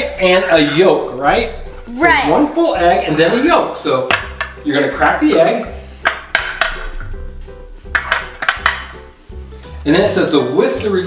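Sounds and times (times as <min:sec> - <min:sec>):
background music: 0:00.0 - 0:11.0.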